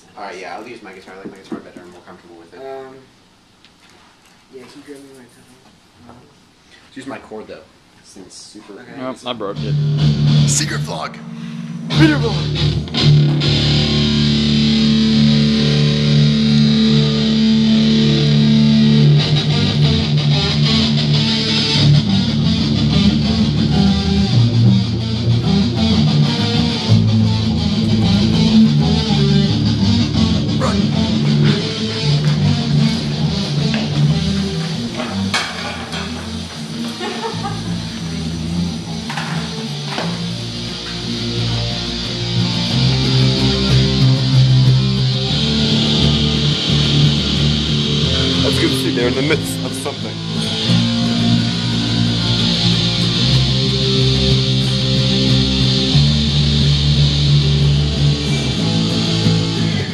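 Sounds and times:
bass guitar: 9.0s - 59.9s
electric guitar: 9.6s - 59.9s.

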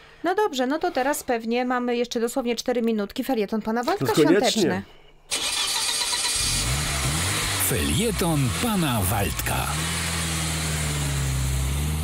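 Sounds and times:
car engine starting: 5.3s - 12.0s.

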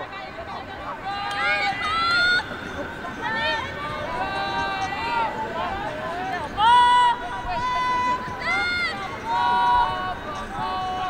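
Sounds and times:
women shouting high-pitched calls: 1.0s - 2.5s, 6.6s - 11.0s.

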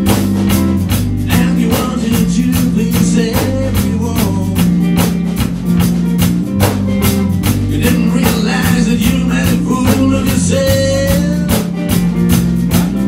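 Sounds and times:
drum kit steady beat: 0.0s - 13.0s
electric bass: 0.0s - 13.0s
electric guitar: 0.0s - 13.0s.

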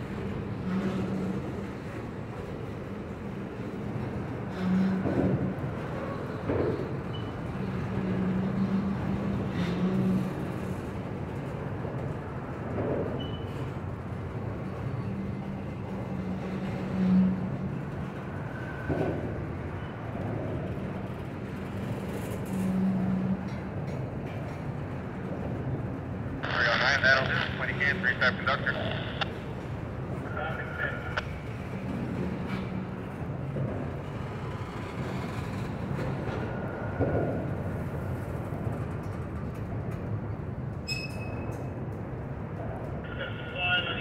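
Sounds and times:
steel wheels rumbling on rail: 0.0s - 44.0s.

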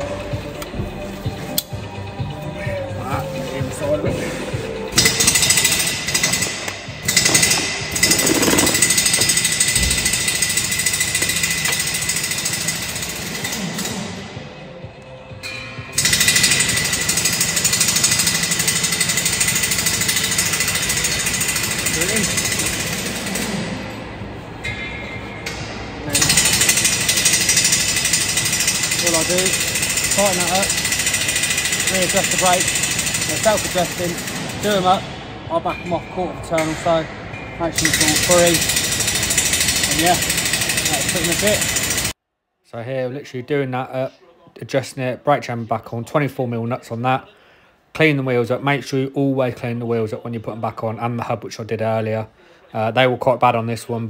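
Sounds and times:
pneumatic air tool: 5.0s - 14.1s, 16.0s - 23.9s, 26.1s - 34.7s, 37.8s - 42.2s.

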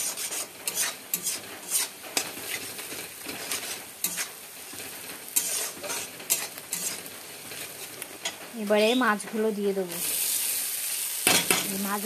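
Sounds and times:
metal spatula scraping pan: 0.0s - 8.4s
fish sizzling in oil: 0.0s - 12.0s.

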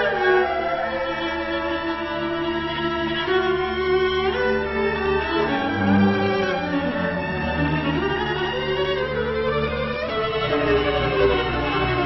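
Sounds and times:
orchestra string section: 0.0s - 12.0s
solo cello bowed melody: 0.0s - 12.0s.

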